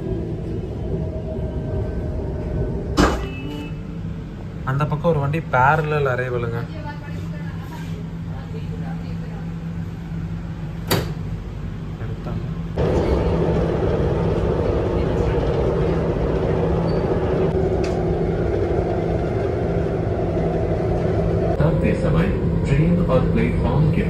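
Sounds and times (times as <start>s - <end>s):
train rumbling along track: 0.0s - 10.8s, 11.5s - 24.0s
train cabin hum: 12.7s - 24.0s.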